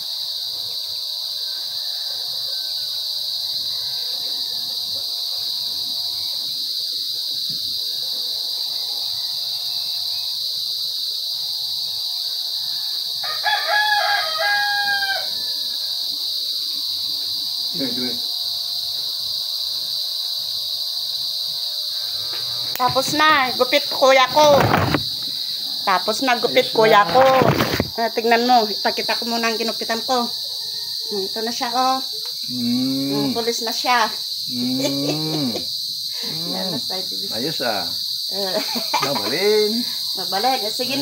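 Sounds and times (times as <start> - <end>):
high-pitched insect drone: 0.0 - 41.0
rooster crowing: 1.3 - 4.8, 12.5 - 16.0, 30.0 - 31.7.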